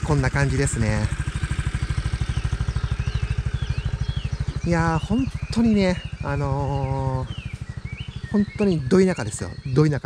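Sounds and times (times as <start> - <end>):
scooter engine idling: 0.0 - 10.0
faint bird chirps: 0.3 - 10.0.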